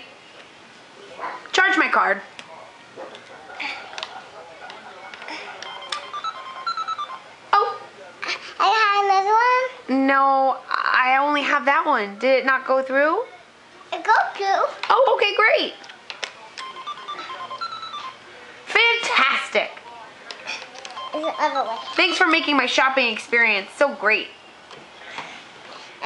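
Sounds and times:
short electronic beeps: 0:05.6 - 0:07.2, 0:16.6 - 0:18.2, 0:21.0 - 0:22.2.

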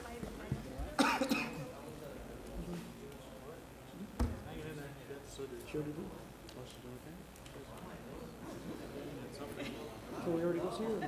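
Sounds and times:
low background chatter: 0:00.0 - 0:11.0
person coughing: 0:01.0 - 0:01.7.

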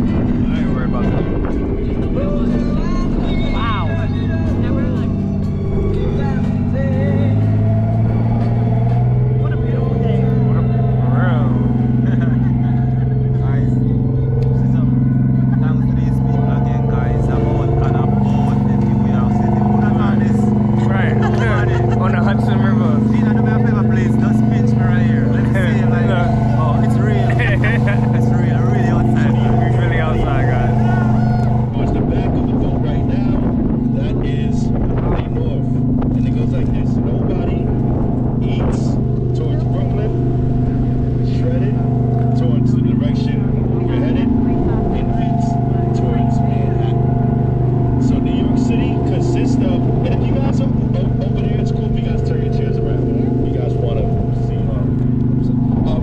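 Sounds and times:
passengers chattering: 0:00.0 - 0:37.3
ferry engine droning: 0:00.0 - 0:56.0.

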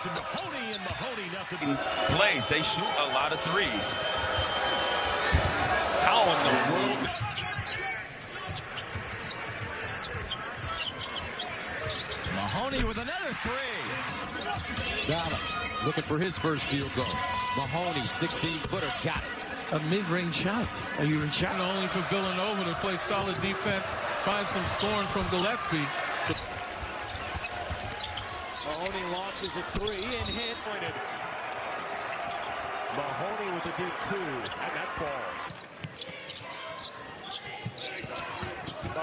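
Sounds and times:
arena crowd noise: 0:00.0 - 0:39.0
sneaker squeaks: 0:04.0 - 0:04.6, 0:06.4 - 0:13.1, 0:24.5 - 0:30.6, 0:35.4 - 0:39.0.

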